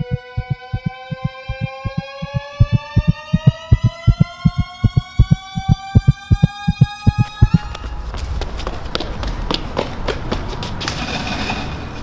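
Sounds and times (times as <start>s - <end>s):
low pulsing thumps: 0.0s - 7.8s
rising synthesized tone: 0.0s - 8.1s.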